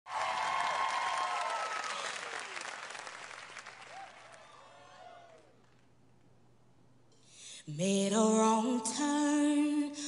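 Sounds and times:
audience applauding and cheering: 0:00.1 - 0:05.9.

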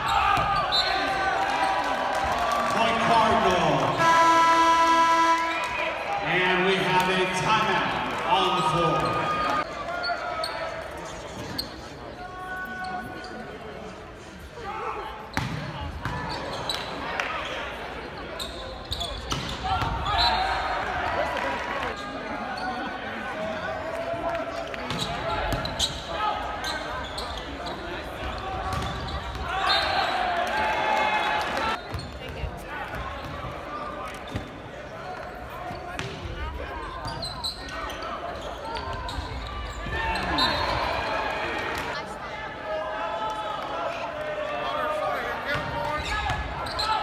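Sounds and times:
people shouting and cheering: 0:38.3 - 0:47.0.

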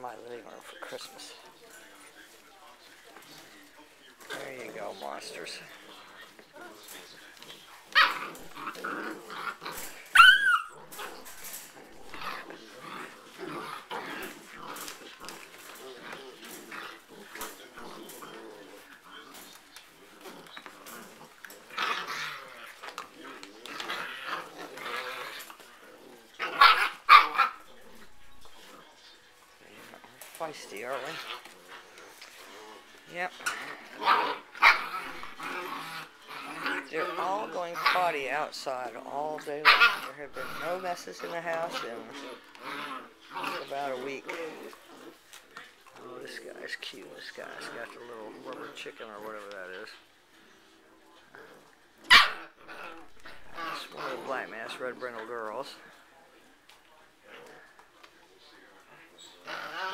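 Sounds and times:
puppies growling: 0:00.0 - 0:59.9
puppy squealing: 0:10.0 - 0:10.9
puppy sharp cry: 0:10.1 - 0:10.8.

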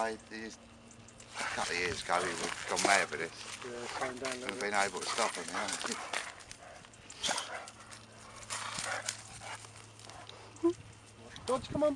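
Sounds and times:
dog breathing: 0:01.2 - 0:10.6
dogs scuffling on gravel: 0:01.3 - 0:10.2.

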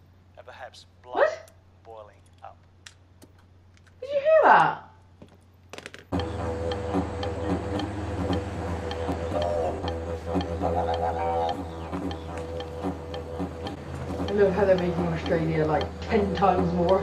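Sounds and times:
didgeridoo drone: 0:06.1 - 0:17.0
sharp ticking beat: 0:06.1 - 0:17.0.

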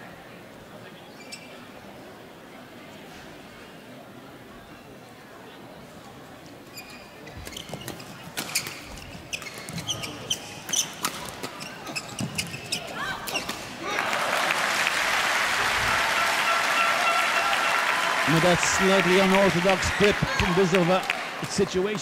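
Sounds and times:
crowd applauding: 0:13.8 - 0:22.0.

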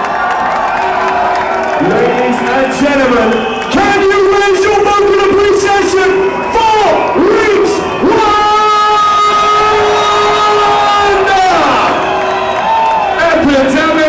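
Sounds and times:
crowd cheering: 0:00.0 - 0:14.0
amplified voice shouting: 0:03.8 - 0:12.0.

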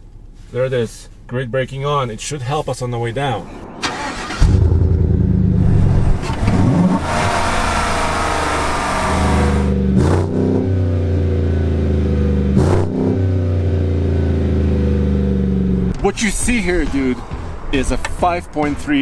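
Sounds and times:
truck engine revving then idling: 0:03.9 - 0:16.0.

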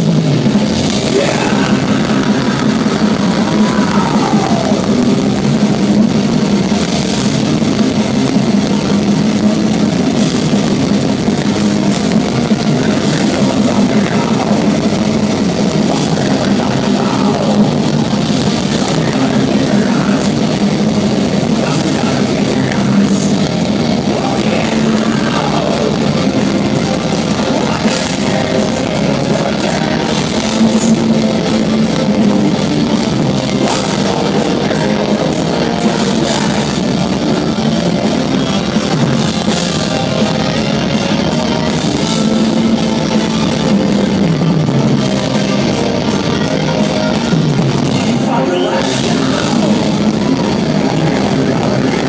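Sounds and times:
guitar lead lines sliding down: 0:00.0 - 0:52.0
metal band playing live: 0:00.0 - 0:52.0.

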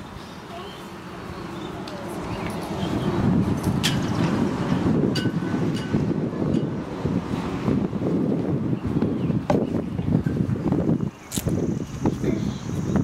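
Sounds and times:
wind buffeting microphone: 0:01.2 - 0:13.0.

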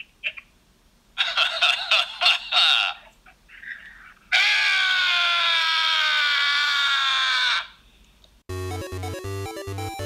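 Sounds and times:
person screaming: 0:04.3 - 0:07.8.

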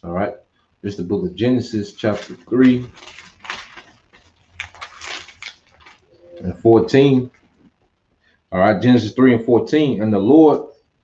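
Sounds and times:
paper rustling and crinkling: 0:01.9 - 0:07.7.

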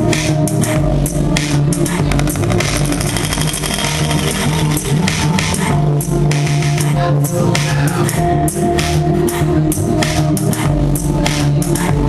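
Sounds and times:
deep bass line: 0:00.0 - 0:12.0.

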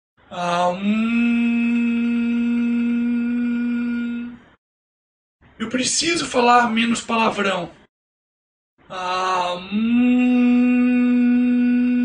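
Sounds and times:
man chanting om: 0:00.3 - 0:04.4, 0:08.9 - 0:12.0.

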